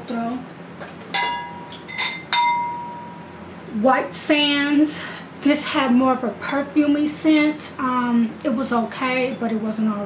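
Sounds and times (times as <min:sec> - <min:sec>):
glass jars clinking: 0:01.2 - 0:03.2.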